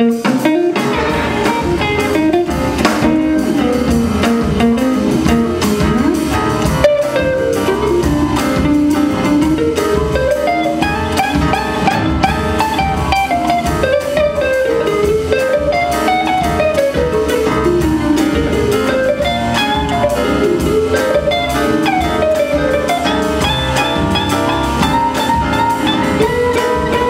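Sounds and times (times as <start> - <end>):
jazz big band playing: 0.0 - 27.0.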